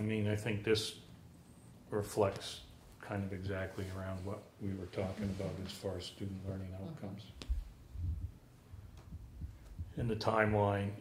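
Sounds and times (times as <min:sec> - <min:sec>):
low hum: 0:07.4 - 0:10.2.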